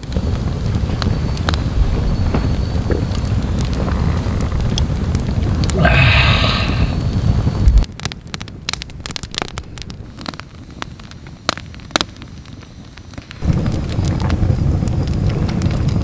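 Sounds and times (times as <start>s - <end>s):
campfire crackling and popping: 0.0s - 16.0s
loud low rumble: 1.6s - 7.9s.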